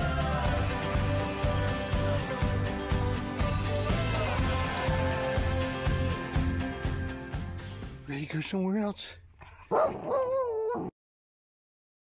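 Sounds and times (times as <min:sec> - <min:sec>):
small dog whining: 0:09.7 - 0:10.9.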